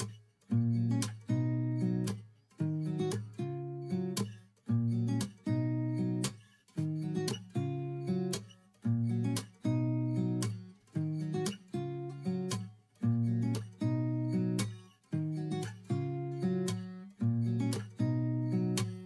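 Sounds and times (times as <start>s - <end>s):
acoustic guitar strumming: 0.0s - 19.0s.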